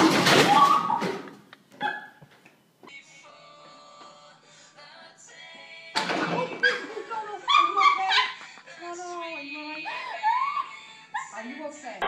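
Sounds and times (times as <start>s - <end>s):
sudden clatter of falling: 0.0s - 1.4s.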